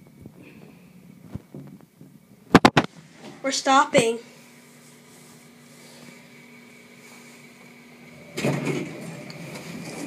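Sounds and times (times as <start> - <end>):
elevator humming with faint whine: 0.0 - 10.0
elevator doors sliding open: 8.1 - 10.0.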